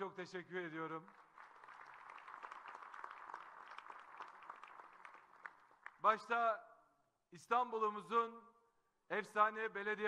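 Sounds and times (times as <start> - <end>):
audience applauding: 1.0 - 6.0.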